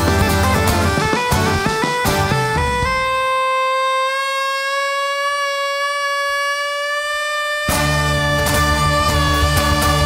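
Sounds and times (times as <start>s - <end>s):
live band playing: 0.0s - 3.5s, 7.7s - 10.0s
wind instrument long high note: 0.0s - 10.0s.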